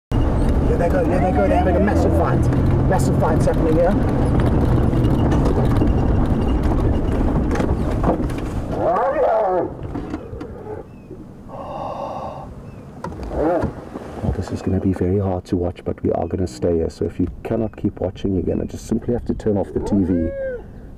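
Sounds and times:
vehicle engine running: 0.1 - 8.8
hyenas calling: 8.7 - 13.8, 19.6 - 20.8.

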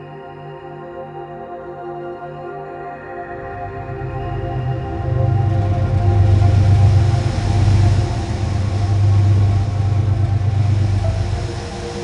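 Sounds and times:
passenger train rumbling on rails: 3.3 - 12.0.

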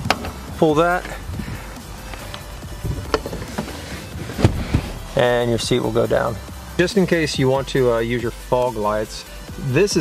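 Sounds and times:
background music: 0.0 - 10.0
car seatback clicks and knocks: 2.8 - 5.0.

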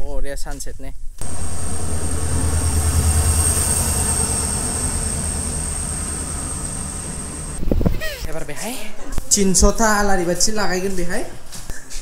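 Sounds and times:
thin high whine: 1.2 - 8.3
train carriages rumbling: 1.2 - 8.3.

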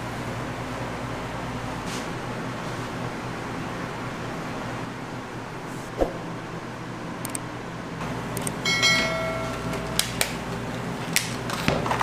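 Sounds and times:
steady room hum: 0.0 - 12.0
sharp clicks: 7.2 - 7.4, 8.4 - 8.6
metal kitchenware knock ringing: 8.7 - 9.6.

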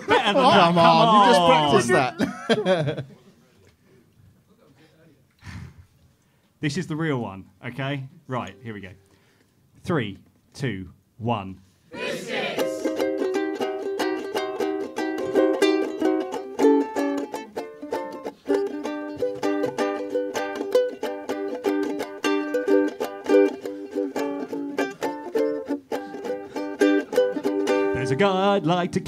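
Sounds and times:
ukulele strummed quickly: 12.6 - 28.2.

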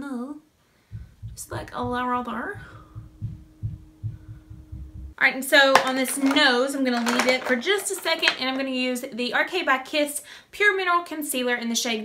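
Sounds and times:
faint electrical hum: 0.0 - 12.0.

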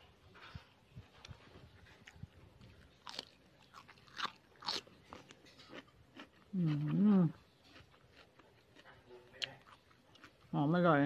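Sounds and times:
cucumber crunching and chewing: 1.0 - 11.0
person humming mmm: 6.5 - 7.4.

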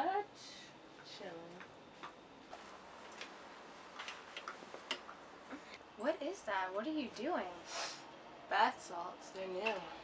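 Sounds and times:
light clicks and taps: 4.0 - 5.6.

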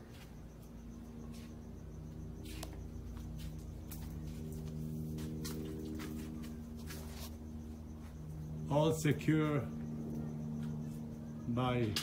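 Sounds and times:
low hum with steady tones: 0.0 - 12.0.

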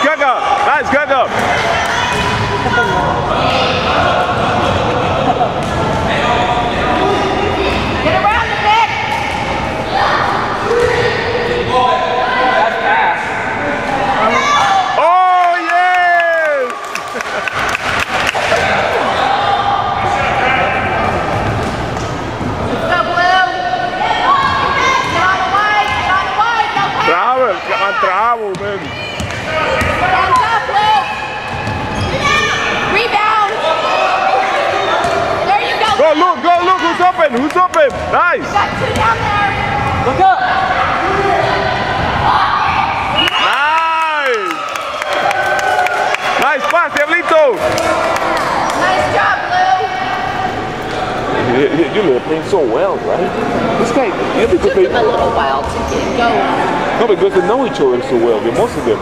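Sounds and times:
voices echoing in gym: 0.0 - 59.0
ball bouncing on hardwood court: 28.5 - 30.6, 31.5 - 31.9.

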